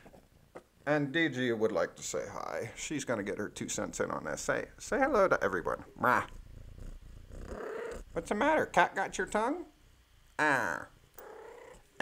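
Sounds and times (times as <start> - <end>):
cat purring: 2.5 - 9.8, 10.7 - 12.0.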